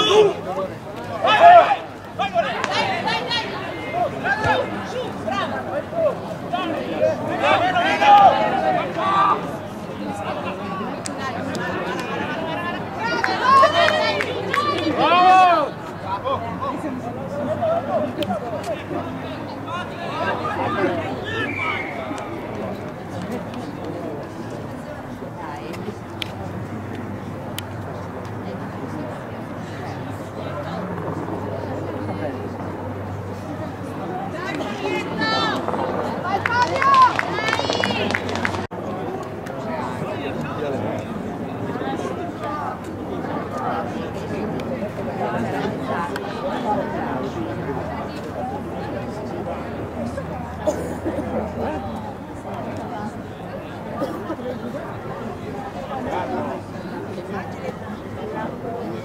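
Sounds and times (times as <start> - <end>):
people chattering: 0.0 - 59.0
players talking and calling out: 0.0 - 59.0.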